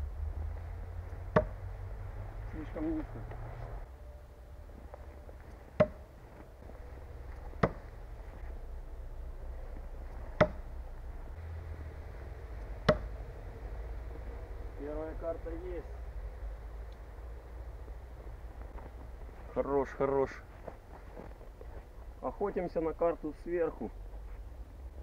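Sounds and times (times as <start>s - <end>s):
throwing knife striking wood: 1.3s - 1.6s, 5.8s - 6.1s, 7.6s - 7.9s, 10.4s - 10.7s, 12.8s - 13.1s.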